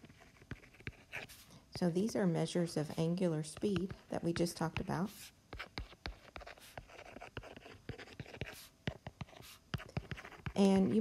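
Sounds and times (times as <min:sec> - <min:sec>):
stylus tapping and scratching on touchscreen: 0:00.0 - 0:11.0.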